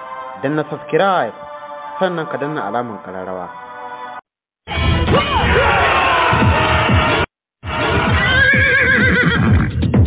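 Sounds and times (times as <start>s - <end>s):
music with fast drumbeat: 6.3s - 10.0s
horse whinnying: 8.1s - 9.7s.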